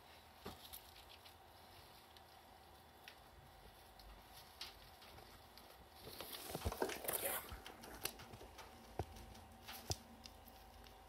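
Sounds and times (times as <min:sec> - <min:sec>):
squirrel clicks and scratches: 0:00.0 - 0:11.0.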